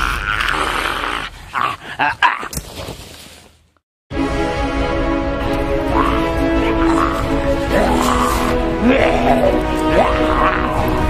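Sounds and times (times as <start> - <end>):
rough growling and snarling: 5.9 - 11.0.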